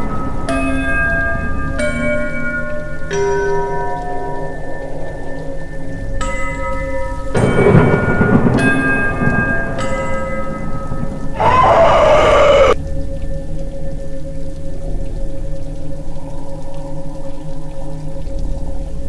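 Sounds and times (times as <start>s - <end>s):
rumbling noise: 7.4s - 12.8s.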